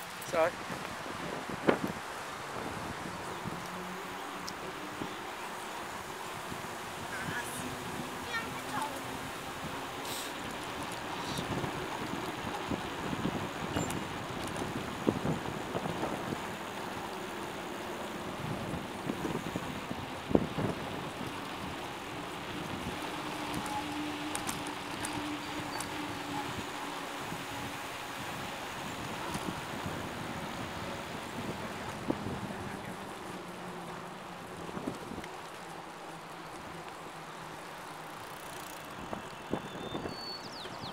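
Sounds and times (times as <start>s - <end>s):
wind rushing over microphone: 0.0s - 33.4s
bicycle tyre and road noise: 0.0s - 40.9s.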